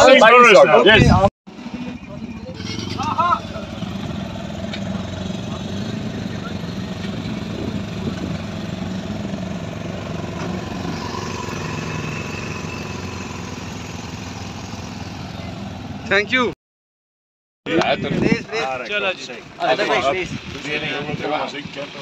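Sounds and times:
motorcycle engines idling: 0:01.5 - 0:16.5, 0:18.4 - 0:22.0.

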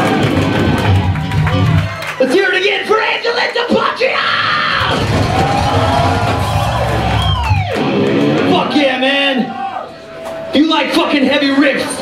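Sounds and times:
distorted electric guitars: 0:00.0 - 0:02.0, 0:04.4 - 0:10.6.

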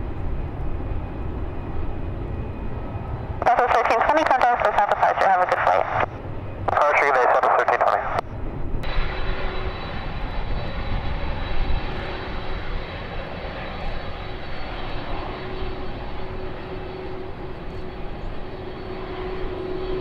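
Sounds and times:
jet engines idling: 0:00.0 - 0:20.0
faint high whine: 0:03.4 - 0:12.6.

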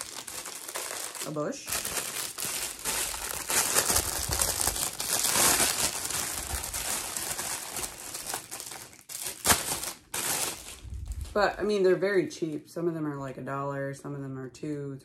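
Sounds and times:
plastic bag crinkling: 0:00.0 - 0:11.7.

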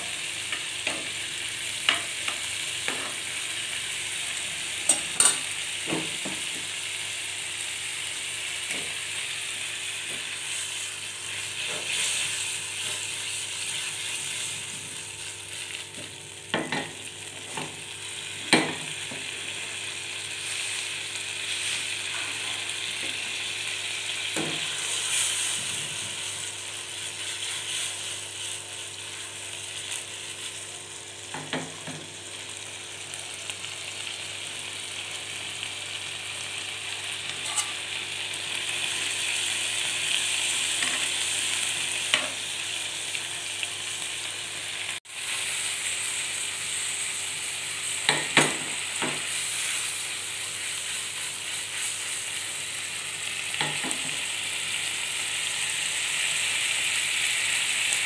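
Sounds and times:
squid sizzling in a frying pan: 0:00.0 - 0:58.0.

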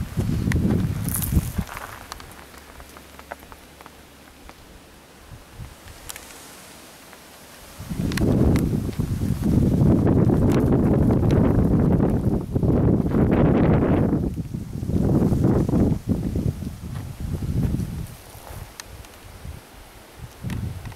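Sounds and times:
wind buffeting microphone: 0:00.0 - 0:02.9, 0:05.2 - 0:06.2, 0:07.7 - 0:20.9.

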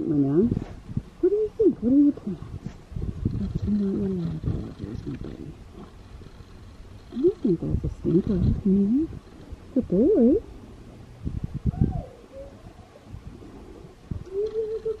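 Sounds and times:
woman cooing and humming: 0:14.2 - 0:15.0.

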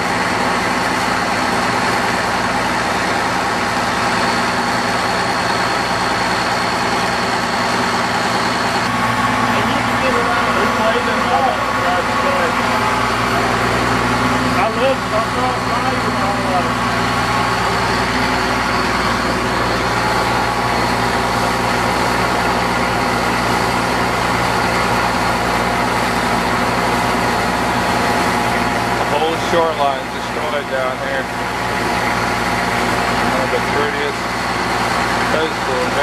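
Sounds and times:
boat engine running: 0:00.0 - 0:36.0
water noise: 0:00.0 - 0:36.0.

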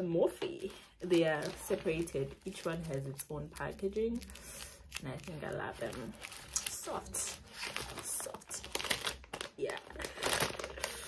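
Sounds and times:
plastic packaging crinkling: 0:00.3 - 0:11.0.

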